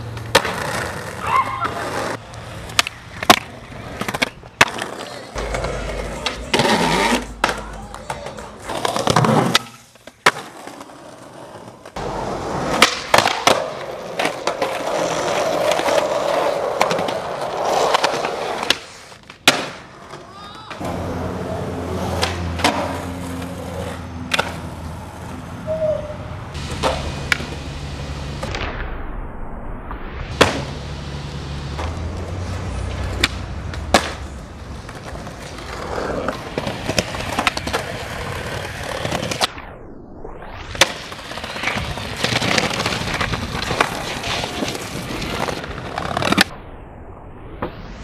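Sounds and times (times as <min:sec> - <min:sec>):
skateboard tail clacks: 0:00.0 - 0:10.8, 0:33.0 - 0:39.5
skateboard wheels rolling on pavement: 0:00.0 - 0:28.7, 0:30.2 - 0:46.6.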